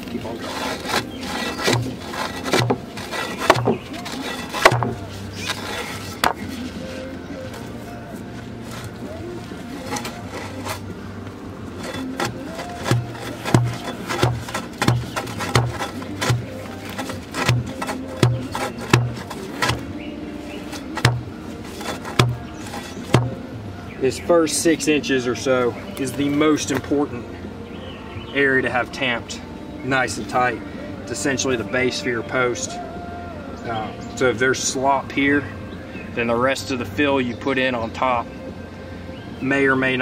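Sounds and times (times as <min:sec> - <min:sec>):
background music with steady beat: 0:00.0 - 0:39.5.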